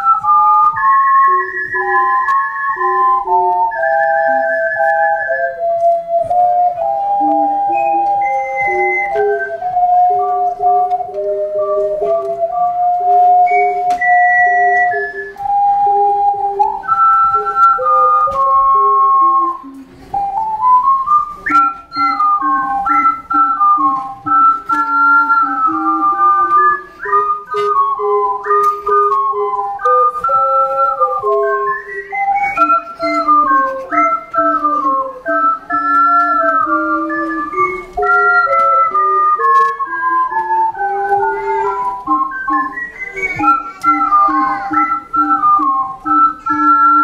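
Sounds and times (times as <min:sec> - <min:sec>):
ocarina ensemble playing: 0:00.0 - 0:47.0.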